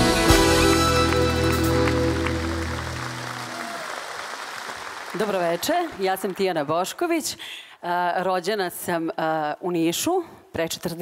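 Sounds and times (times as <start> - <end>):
live band holding chord: 0.0 - 3.6
applause: 0.1 - 7.4.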